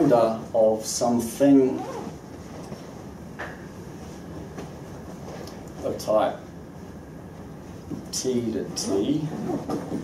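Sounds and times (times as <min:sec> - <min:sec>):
low room noise: 0:00.0 - 0:10.0.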